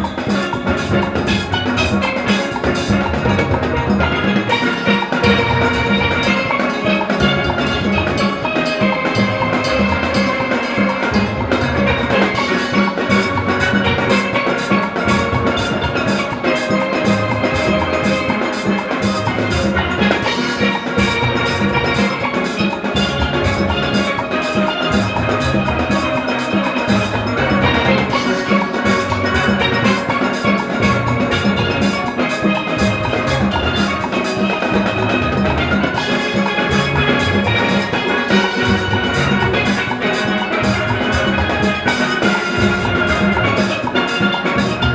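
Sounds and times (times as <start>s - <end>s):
drum kit and percussion beat: 0.0s - 44.9s
steelpans playing: 0.0s - 44.9s.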